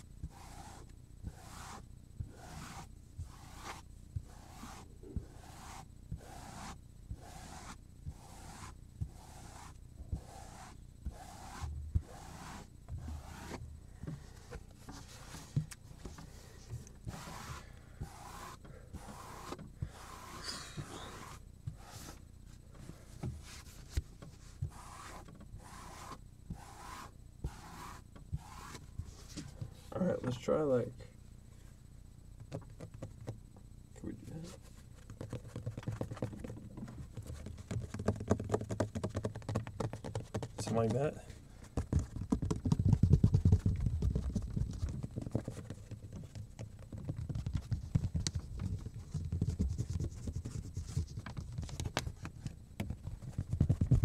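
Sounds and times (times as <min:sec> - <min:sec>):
rubbing strokes on cutting board: 0:00.0 - 0:22.2, 0:22.9 - 0:29.5.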